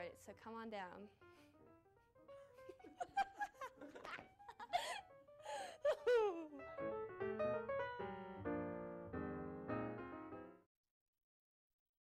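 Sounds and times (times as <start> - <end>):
light background music: 0.0 - 10.5
girl laughing breathily: 2.5 - 6.6.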